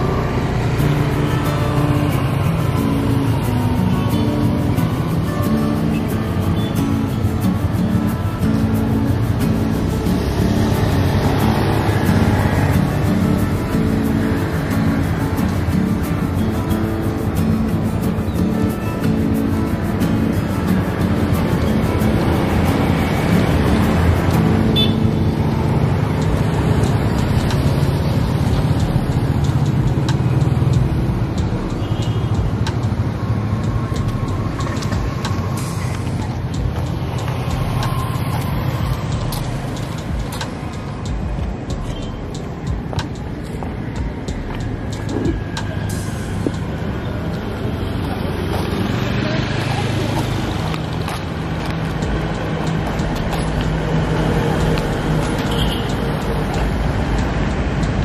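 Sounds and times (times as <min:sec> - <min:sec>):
cars passing: 0:00.0 - 0:58.0
motorcycles passing: 0:00.0 - 0:58.0
steady road hum: 0:00.0 - 0:58.0.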